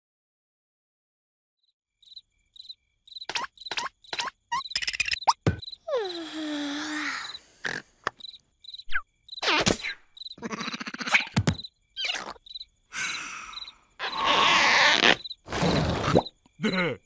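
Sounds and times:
cricket chirps: 1.6s - 17.0s.

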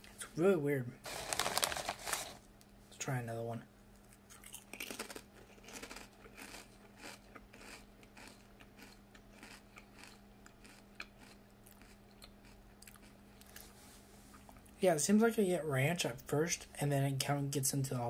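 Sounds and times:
potato chip crunching: 1.1s - 2.4s, 4.3s - 13.7s.

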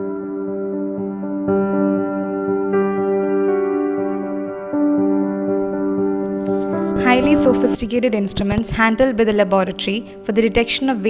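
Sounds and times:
soft ambient instrumental music: 0.0s - 11.0s.

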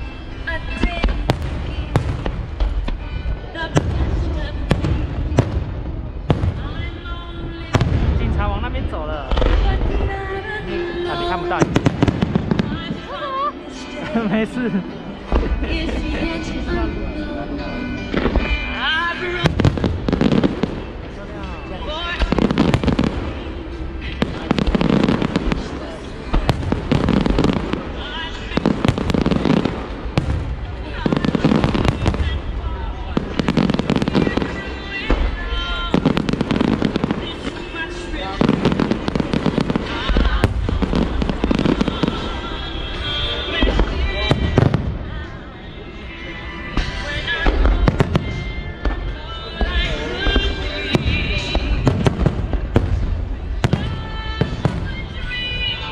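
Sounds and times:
fireworks crackling: 0.0s - 55.9s.

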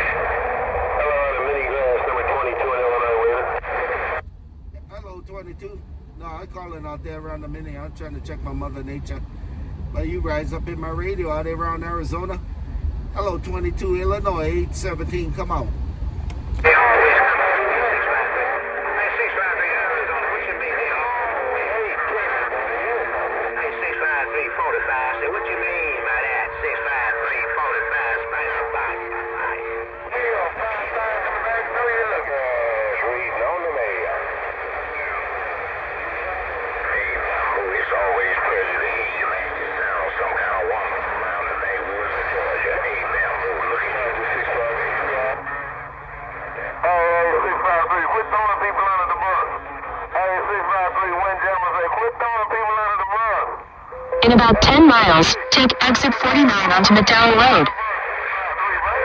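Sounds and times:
overlapping voices over radio: 0.0s - 4.2s, 16.6s - 45.8s, 46.4s - 53.6s, 54.2s - 59.0s
radio hiss: 0.0s - 4.2s, 16.6s - 45.6s, 54.2s - 58.8s
strong voice on radio: 0.0s - 4.2s, 16.6s - 45.6s, 54.2s - 57.8s
steady tones: 23.3s - 30.3s, 53.9s - 57.7s.

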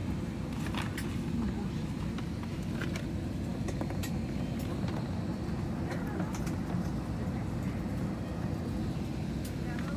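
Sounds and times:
airliner cabin engine rumble: 0.0s - 9.9s.

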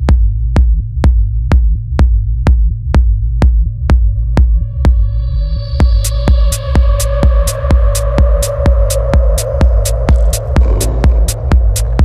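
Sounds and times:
droning hum and sub-bass: 0.0s - 12.0s
techno kick drum: 0.0s - 12.0s
hi-hats: 5.8s - 12.0s.

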